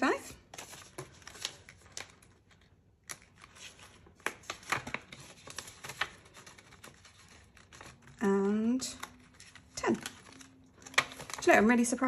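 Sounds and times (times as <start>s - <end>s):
banknotes and plastic sleeve crinkling: 0.0s - 12.0s.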